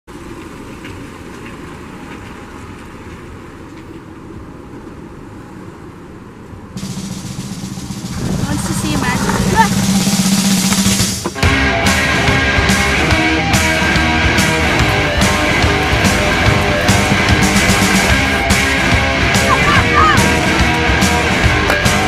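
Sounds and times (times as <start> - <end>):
car engine running: 6.8 - 22.0
rock music: 6.8 - 22.0.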